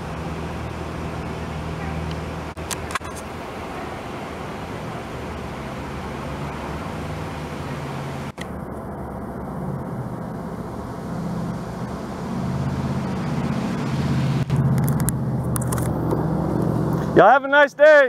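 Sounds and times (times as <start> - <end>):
vehicle engine rumble: 0.0 - 17.8.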